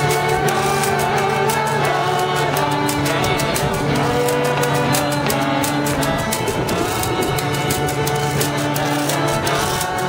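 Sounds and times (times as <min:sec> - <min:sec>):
fiddle tune: 0:00.0 - 0:10.0
washboard scraped with sticks: 0:00.0 - 0:10.0.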